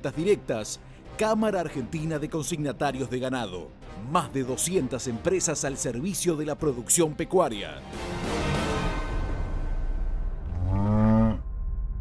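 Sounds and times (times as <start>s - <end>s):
low background music: 0.0s - 12.0s
cow mooing: 10.4s - 11.4s.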